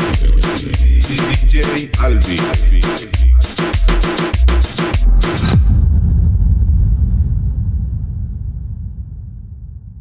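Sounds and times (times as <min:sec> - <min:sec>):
deep bass rumble: 0:00.0 - 0:10.0.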